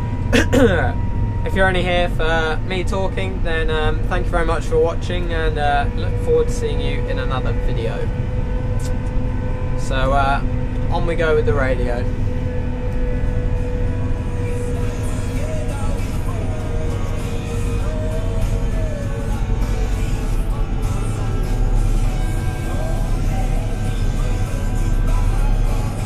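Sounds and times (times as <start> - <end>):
diesel engine running: 0.0 - 26.0
music from radio: 11.8 - 26.0.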